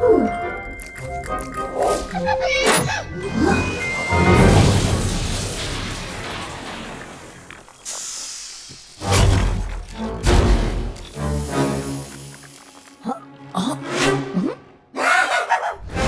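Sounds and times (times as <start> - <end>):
cartoon glass breaking: 2.4 - 7.8.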